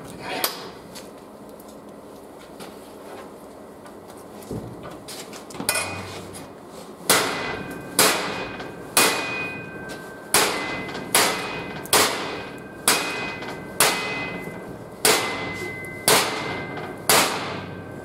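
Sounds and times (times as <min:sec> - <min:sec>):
hammer striking steel: 0:05.7 - 0:06.1, 0:07.1 - 0:18.0.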